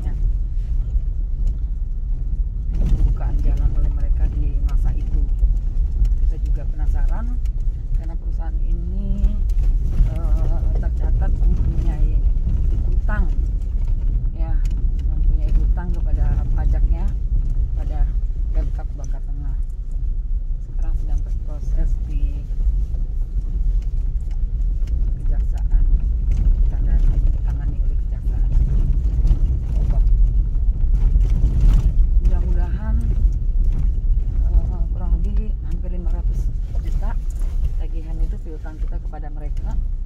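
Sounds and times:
engine and tyre rumble: 0.0s - 40.0s.

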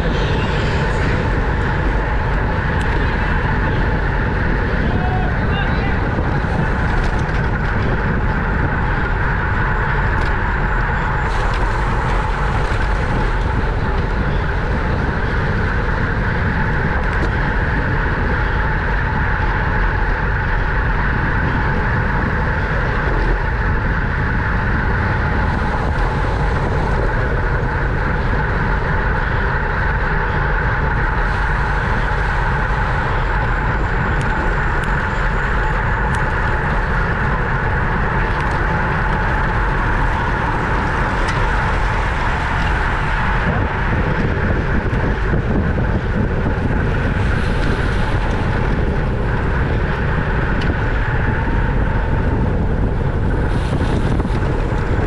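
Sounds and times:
bicycle tyre noise on road: 0.0s - 55.0s
wind rushing over microphone: 0.0s - 55.0s.

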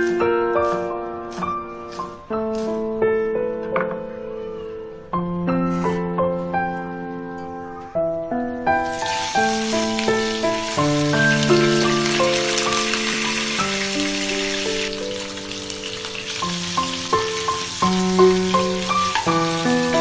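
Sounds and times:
piano music: 0.0s - 20.0s
frying in hot oil sizzle: 8.8s - 20.0s.

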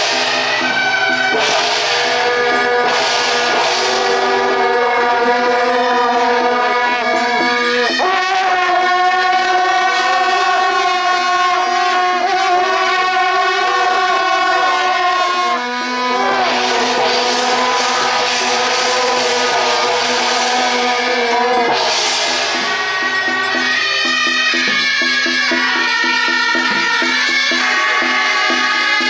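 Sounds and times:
brass band playing chords: 0.0s - 29.0s.

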